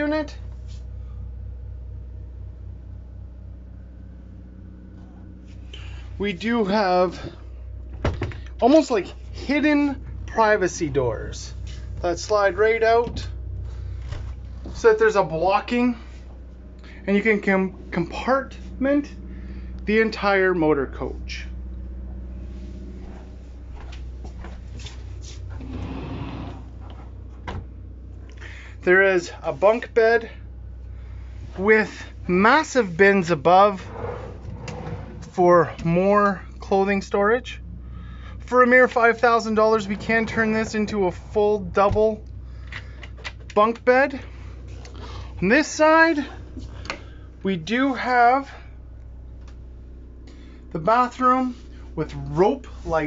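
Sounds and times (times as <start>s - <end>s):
generator humming: 0.0s - 53.0s.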